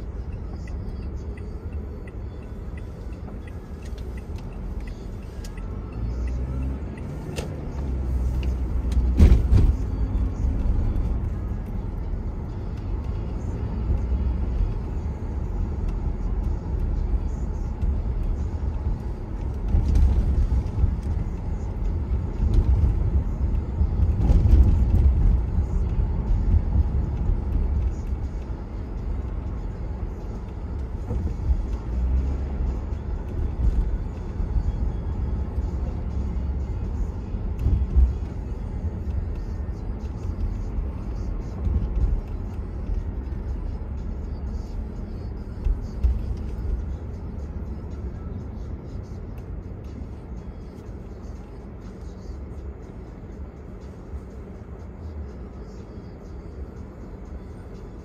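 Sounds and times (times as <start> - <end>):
car interior rumble: 0.0 - 58.0
thumps from road bumps: 8.9 - 10.0.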